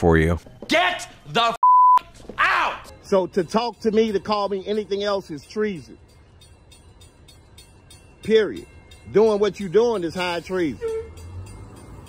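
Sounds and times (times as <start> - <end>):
censor bleep: 1.6 - 2.0
person shouting: 2.4 - 2.9.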